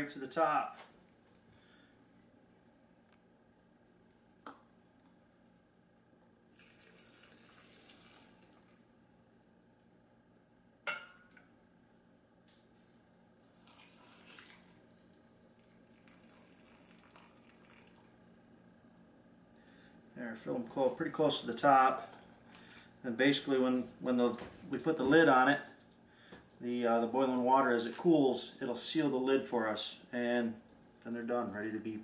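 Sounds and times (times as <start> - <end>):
liquid pouring into jars: 6.5 - 8.8, 13.4 - 15.0, 15.6 - 18.2
glass cup clinking on saucepan: 10.9 - 11.3.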